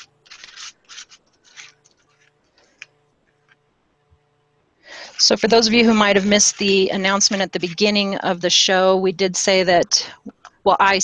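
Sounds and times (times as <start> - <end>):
palette knife scraping paste: 4.9 - 8.5.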